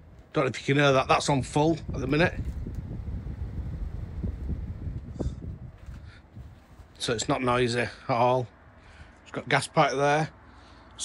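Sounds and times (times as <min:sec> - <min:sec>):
heat pump fan and compressor rumbling: 0:00.0 - 0:11.0.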